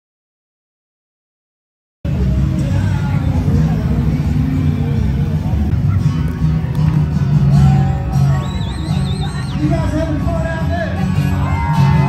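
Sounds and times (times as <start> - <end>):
spectators talking: 2.1 - 12.0
vehicle engines rumbling: 2.1 - 12.0.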